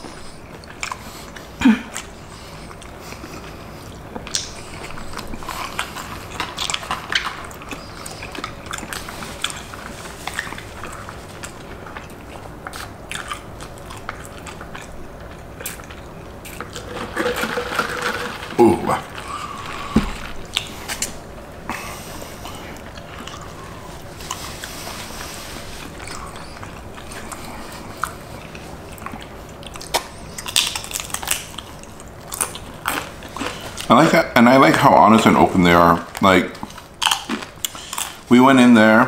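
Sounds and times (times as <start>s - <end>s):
chewing and crunching food: 0.0s - 39.0s.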